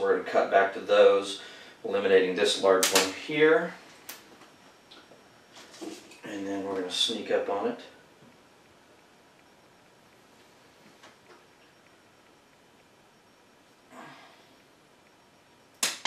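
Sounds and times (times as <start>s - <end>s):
loud sharp branch snap: 15.8s - 16.0s.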